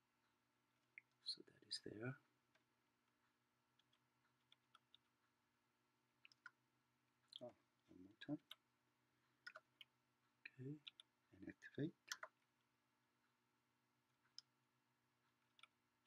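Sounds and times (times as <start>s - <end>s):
keyboard keys clicking: 12.0s - 12.4s.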